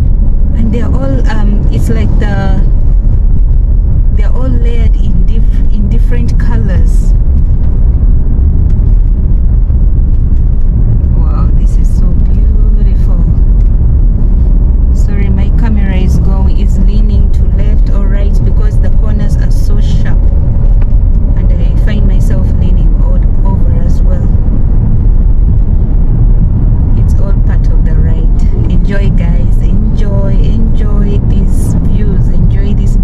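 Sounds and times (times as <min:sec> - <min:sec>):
indistinct voices: 0:00.0 - 0:02.7, 0:04.2 - 0:07.2, 0:11.1 - 0:13.5, 0:14.9 - 0:20.3, 0:21.4 - 0:24.4, 0:26.9 - 0:33.0
car interior rumble: 0:00.0 - 0:33.0.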